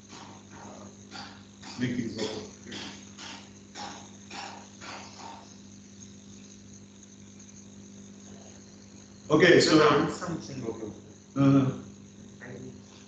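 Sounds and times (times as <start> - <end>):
faint high whine: 0.0 - 13.0
low electrical hum: 0.0 - 13.0.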